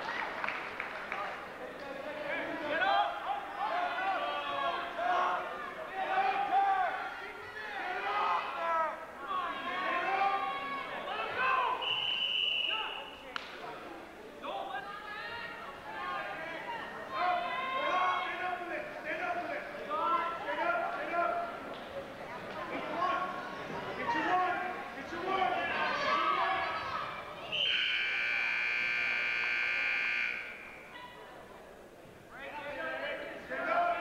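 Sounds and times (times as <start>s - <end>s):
voices of spectators: 0.0s - 34.0s
scoreboard timer buzzer: 27.7s - 30.8s.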